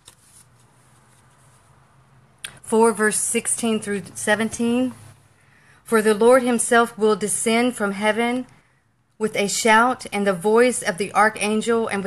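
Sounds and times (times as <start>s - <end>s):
pages being leafed through: 0.0s - 1.7s
low room hiss: 0.0s - 12.0s.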